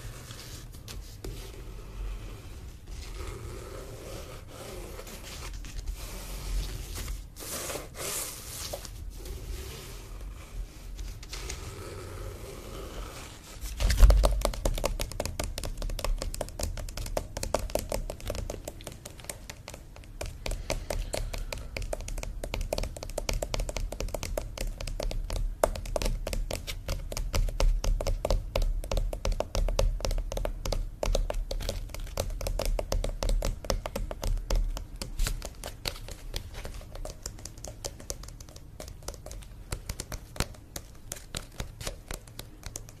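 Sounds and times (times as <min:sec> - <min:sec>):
fingertips tapping on canvas: 0:13.9 - 0:43.0.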